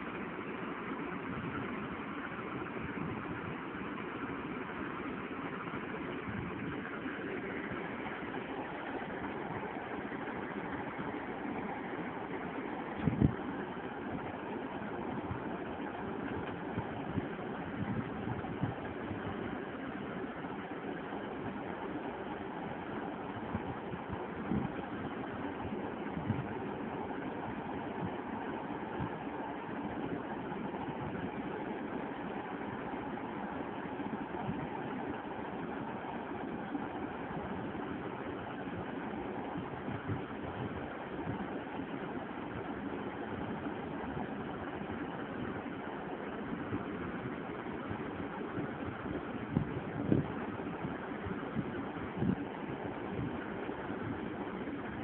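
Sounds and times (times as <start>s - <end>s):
steady background hum: 0.0s - 55.0s.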